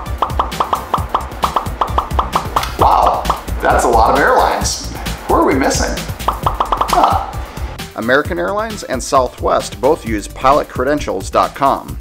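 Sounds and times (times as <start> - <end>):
background music with low beat: 0.0 - 12.0
short pop sound effects: 0.1 - 3.4.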